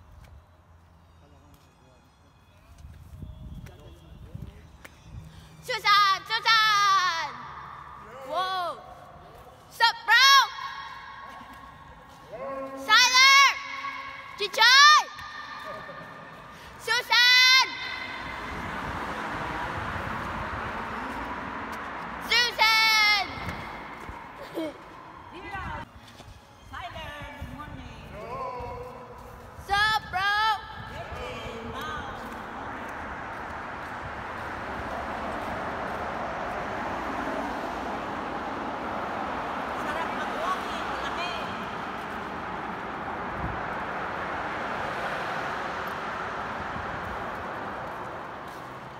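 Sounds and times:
traffic noise in tunnel: 0:00.0 - 0:48.9
person whooping with echo: 0:10.0 - 0:18.6.

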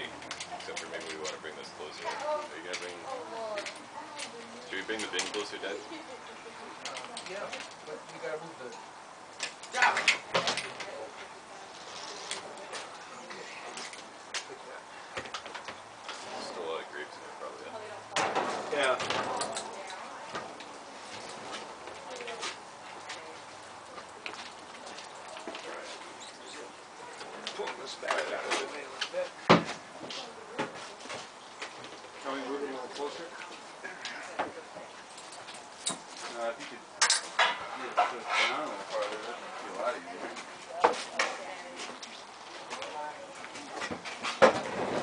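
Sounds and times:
people chattering: 0:00.0 - 0:45.0.

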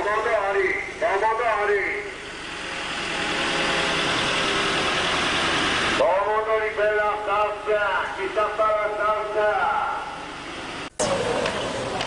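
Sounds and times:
man talking: 0:00.0 - 0:02.1, 0:06.0 - 0:10.2
small vehicle engine running: 0:02.0 - 0:06.0, 0:10.2 - 0:12.0.

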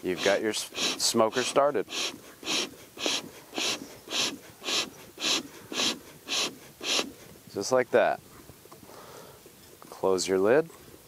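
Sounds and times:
bellows puffing air hiss: 0:00.0 - 0:07.4.

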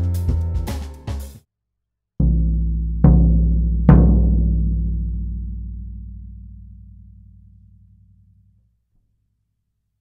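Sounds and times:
floor tom struck with mallet: 0:02.2 - 0:07.8.

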